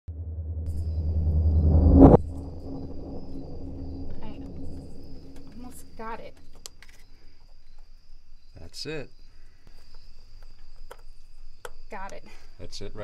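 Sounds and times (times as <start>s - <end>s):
low rumble: 0.0s - 6.5s
steady low hum: 0.1s - 6.5s.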